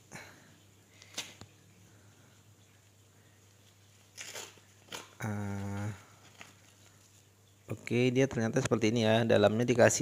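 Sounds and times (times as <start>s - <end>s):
paper rustling: 3.5s - 7.3s
paper envelope ripping: 4.0s - 7.3s.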